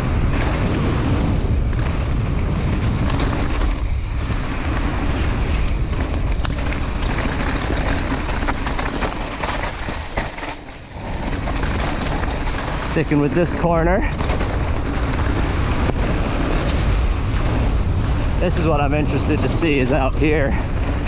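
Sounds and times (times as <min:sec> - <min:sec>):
bike knocking and rattling: 0:00.0 - 0:21.0
wind on microphone: 0:00.0 - 0:21.0
tyres crunching over shale: 0:05.8 - 0:16.5.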